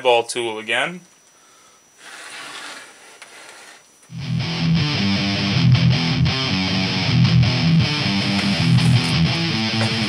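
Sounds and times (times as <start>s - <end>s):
wooden handle scraping: 2.0s - 3.8s, 8.1s - 10.0s.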